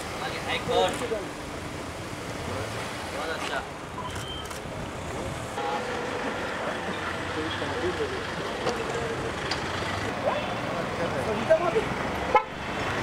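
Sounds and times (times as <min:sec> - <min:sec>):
car engines humming: 0:00.0 - 0:13.0
street noise: 0:00.0 - 0:13.0.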